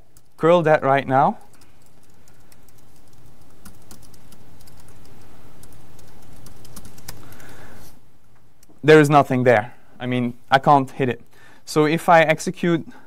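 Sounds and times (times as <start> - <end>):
room hiss: 0.0 - 13.0.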